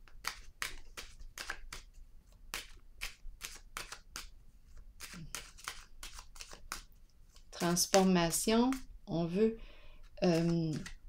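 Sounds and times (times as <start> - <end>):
cards being shuffled: 0.0 - 8.9, 10.0 - 11.0.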